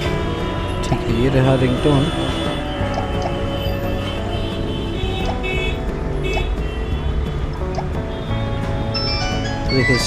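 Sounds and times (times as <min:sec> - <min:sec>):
phone ringtone melody: 0:08.9 - 0:10.0.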